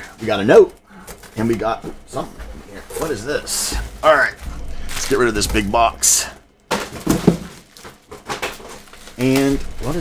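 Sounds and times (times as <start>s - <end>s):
bubble wrap crackling: 0.0s - 10.0s.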